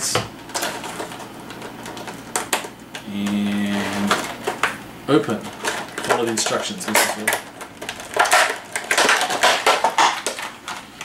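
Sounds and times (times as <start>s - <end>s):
cardboard and plastic packaging crinkling: 0.3s - 11.0s.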